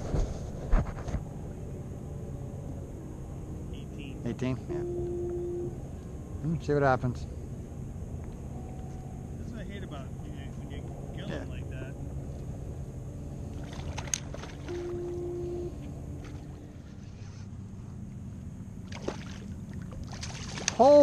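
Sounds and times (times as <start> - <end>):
wind and water rumble: 0.0 - 21.0
brief steady tone: 4.2 - 5.9, 8.5 - 9.4, 14.6 - 16.5.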